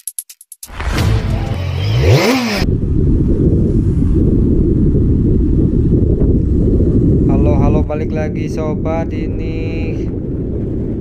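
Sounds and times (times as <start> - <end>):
wind rumbling on microphone: 2.1 - 11.0.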